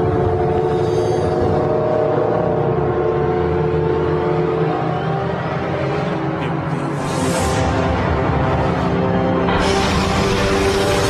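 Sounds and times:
suspenseful orchestral music: 0:00.0 - 0:11.0.

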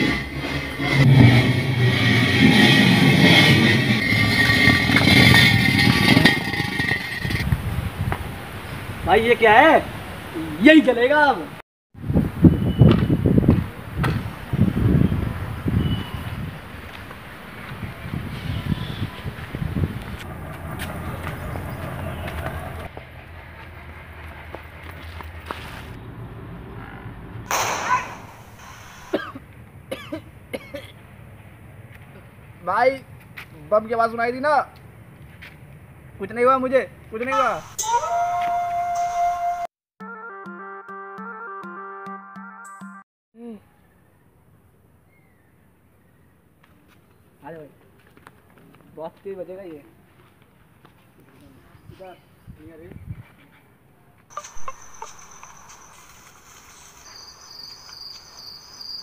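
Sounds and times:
firecracker bang: 0:27.5 - 0:29.4
person coughing: 0:29.1 - 0:31.0
crickets buzzing: 0:54.3 - 0:59.0.

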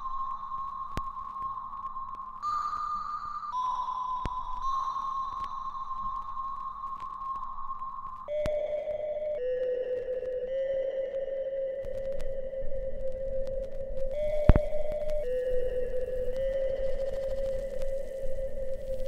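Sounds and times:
slow background music of held notes: 0:00.0 - 0:19.0.

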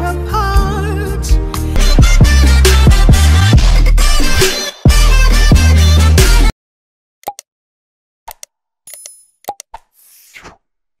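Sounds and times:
short clicks and pops: 0:07.2 - 0:07.5, 0:08.3 - 0:09.9.

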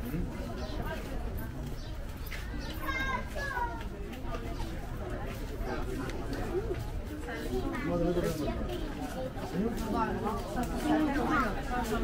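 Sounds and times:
voices of passers-by: 0:00.0 - 0:12.0.

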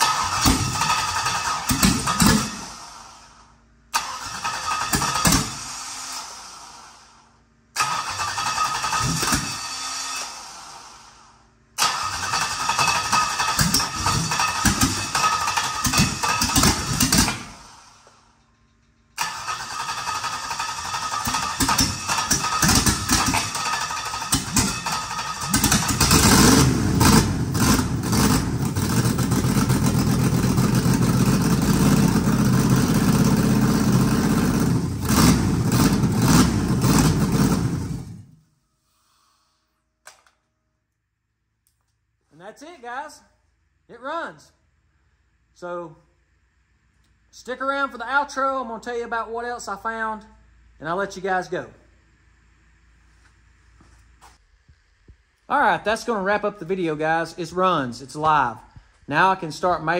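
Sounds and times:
starter motor cranking engine: 0:00.0 - 0:18.2, 0:19.0 - 0:38.3
engine running with steady rumble: 0:00.0 - 0:39.0.

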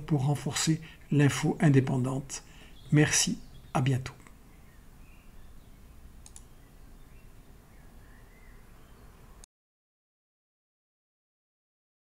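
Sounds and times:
faint short clicks: 0:06.2 - 0:06.5.

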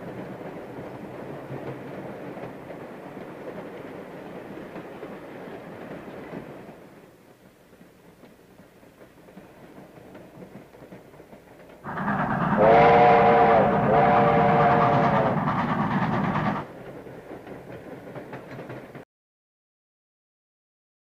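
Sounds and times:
train wheels rumbling on rails: 0:00.0 - 0:19.0
train chime whistle blasts: 0:11.9 - 0:15.4.

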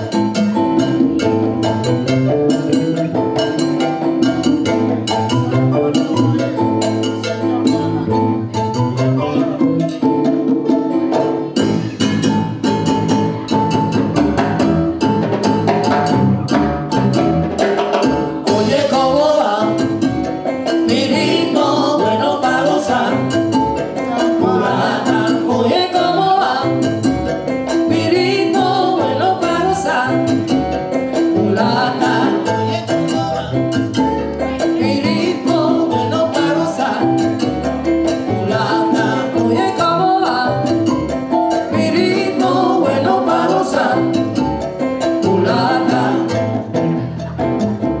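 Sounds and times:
latin jazz band playing: 0:00.0 - 0:48.0.

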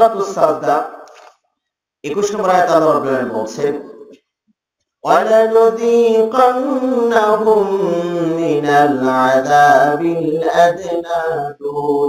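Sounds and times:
man chanting recitation: 0:00.0 - 0:01.0, 0:02.1 - 0:04.1, 0:05.0 - 0:12.0.

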